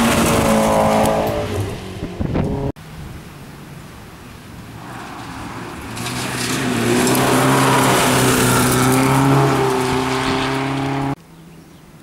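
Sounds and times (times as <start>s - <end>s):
rally car engine revving hard: 0.0s - 2.7s, 4.9s - 11.2s
gravel thrown by tyres: 4.8s - 11.1s.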